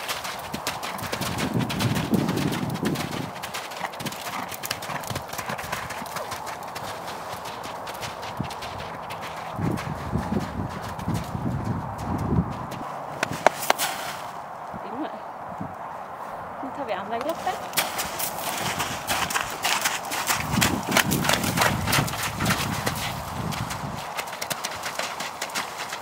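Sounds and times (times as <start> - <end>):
horse hooves cantering on mud: 0.0 - 15.1, 16.7 - 26.0.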